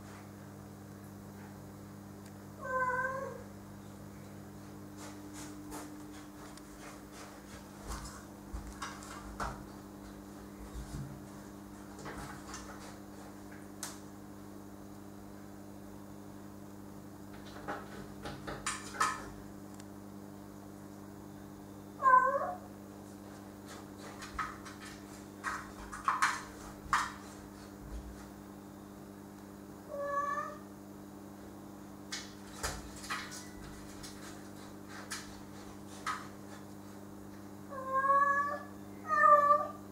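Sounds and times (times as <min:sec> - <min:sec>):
steady low hum: 0:00.0 - 0:39.9
cat meowing: 0:02.6 - 0:03.4, 0:22.0 - 0:22.6, 0:29.9 - 0:30.6, 0:37.7 - 0:39.8.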